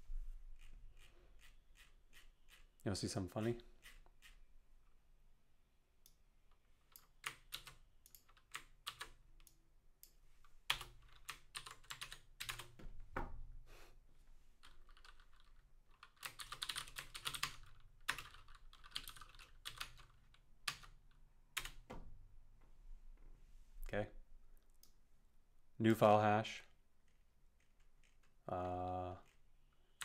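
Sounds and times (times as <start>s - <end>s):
typing on computer keyboard: 6.9s - 9.6s, 10.7s - 12.8s, 14.6s - 21.0s, 21.6s - 21.9s.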